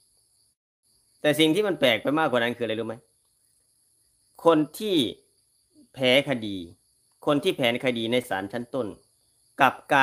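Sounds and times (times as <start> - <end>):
man speaking: 1.2 - 3.0, 4.4 - 5.2, 5.9 - 9.0, 9.6 - 10.0.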